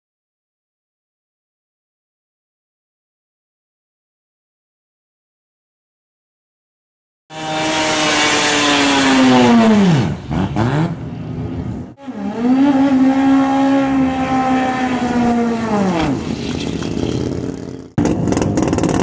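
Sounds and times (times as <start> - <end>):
quick engine revving: 7.3 - 11.0, 12.0 - 19.0
race car engine at high revs: 7.3 - 19.0.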